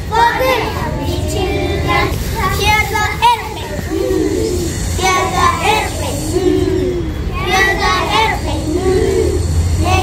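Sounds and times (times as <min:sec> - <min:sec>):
children singing a phonics song: 0:00.0 - 0:10.0.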